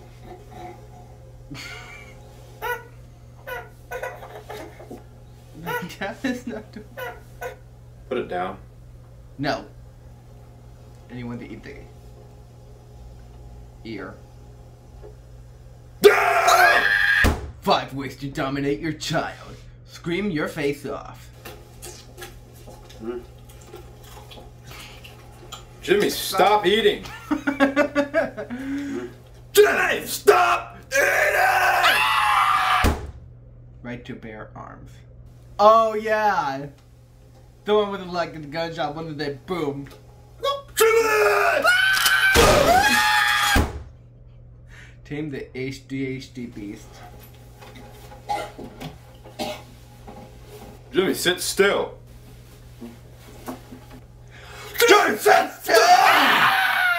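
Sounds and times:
steady low hum: 0:00.0 - 0:55.7
person coughing: 0:48.3 - 0:48.6, 0:49.4 - 0:49.7.

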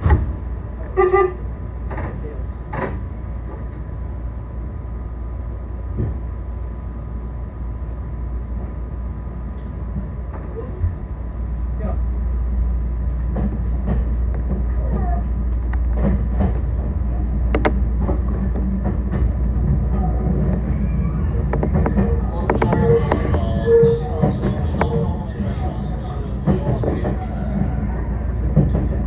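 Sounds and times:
electric train running rumble: 0:00.0 - 0:29.0.

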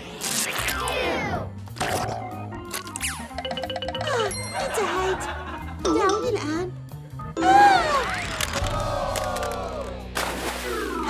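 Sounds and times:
background music: 0:00.2 - 0:11.0.

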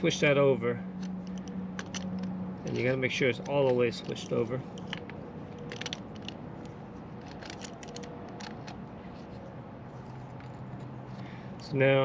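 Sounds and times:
wrench clicking and scraping on metal: 0:00.9 - 0:09.3.

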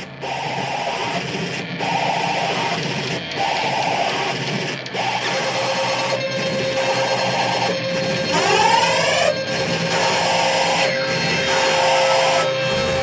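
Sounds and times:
harsh wall of noise: 0:00.0 - 0:13.0
steady droning tone: 0:00.0 - 0:13.0.

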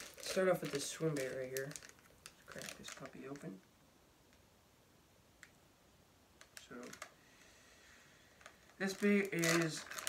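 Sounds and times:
plastic package clicks: 0:00.0 - 0:03.5, 0:08.4 - 0:10.0.

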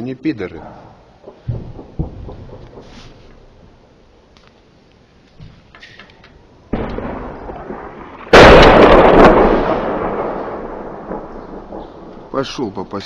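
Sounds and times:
artillery blasts with rumble: 0:01.2 - 0:03.6, 0:06.7 - 0:12.6.

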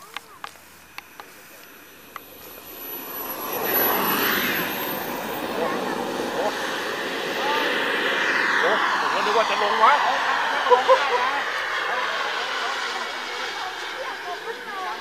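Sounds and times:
model airplane motor: 0:00.0 - 0:15.0
thin high whine: 0:00.6 - 0:15.0.

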